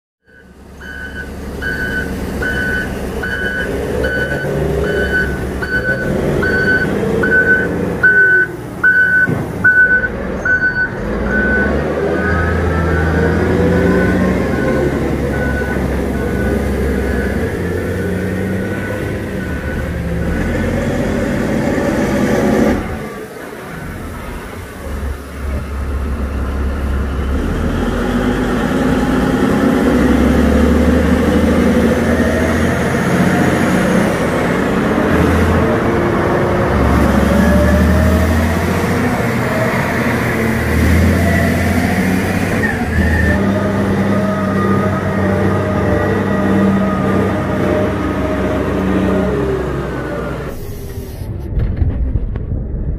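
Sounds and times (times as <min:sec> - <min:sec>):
reversing alarm beeping: 0:00.2 - 0:20.5
diesel truck engine rumble: 0:00.2 - 0:52.9.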